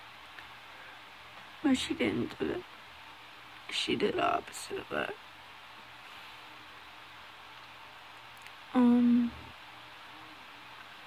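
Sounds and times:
faint room hiss: 0.0s - 11.0s
girl humming: 8.8s - 9.5s.

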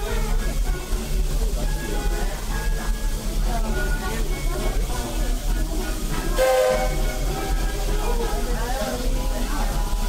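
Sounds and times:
steam locomotive whistle: 6.3s - 7.6s.

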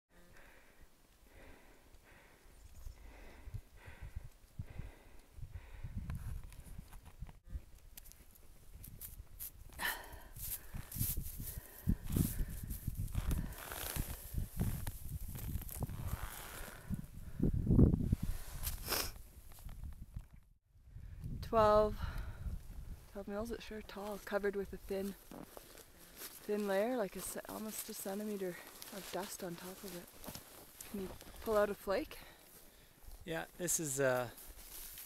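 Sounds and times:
crunching and scraping in snow: 10.4s - 16.9s, 23.9s - 31.9s, 34.0s - 35.0s.

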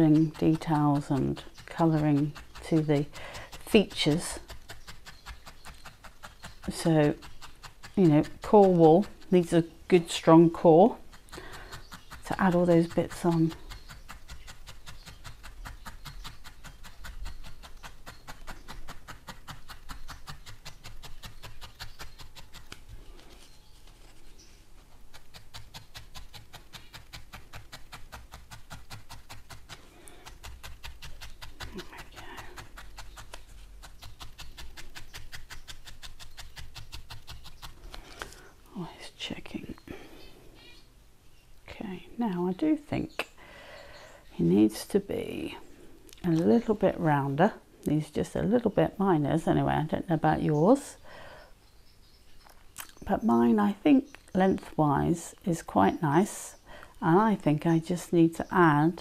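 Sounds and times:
felting needle stabbing into pad: 0.0s - 24.0s, 24.9s - 38.4s.

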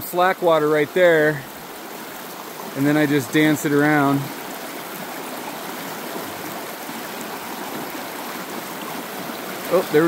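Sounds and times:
creek water rushing over rocks: 0.0s - 10.0s.

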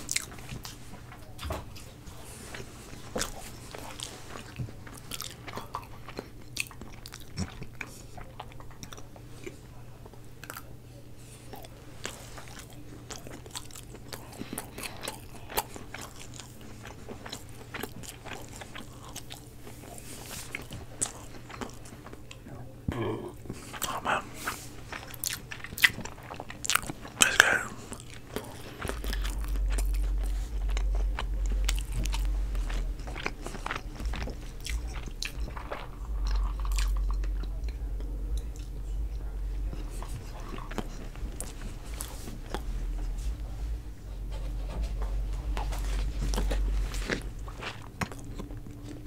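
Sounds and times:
chewing and mouth sounds: 0.0s - 49.0s
low rumble: 28.4s - 49.0s.

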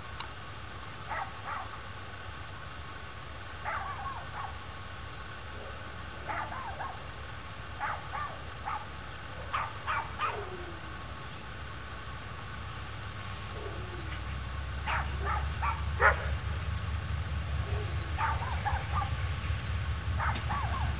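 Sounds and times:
steady low hum: 0.0s - 20.9s.

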